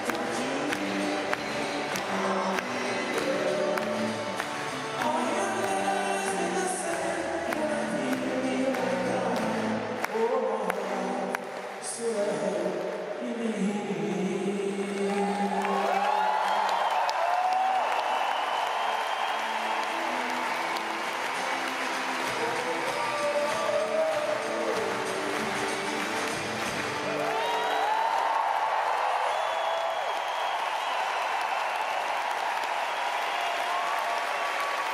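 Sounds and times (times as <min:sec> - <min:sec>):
crowd cheering and applauding: 0:00.0 - 0:34.9.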